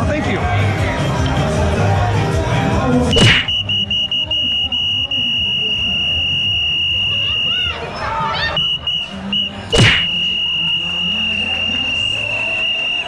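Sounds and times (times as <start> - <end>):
crowd murmur: 0.0 - 13.0
hand slap high five: 3.2 - 3.5, 9.8 - 10.1
shrill steady tone: 3.2 - 13.0.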